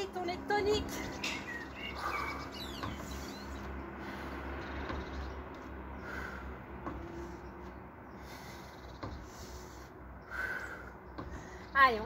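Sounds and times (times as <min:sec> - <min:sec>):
faint bird calls: 0:00.9 - 0:05.3.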